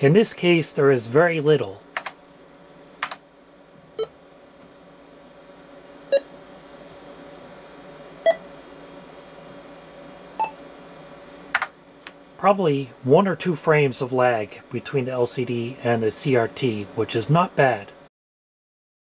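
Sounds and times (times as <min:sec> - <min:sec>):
sharp clicks: 0:01.6 - 0:02.2, 0:03.0 - 0:03.2, 0:11.5 - 0:12.2.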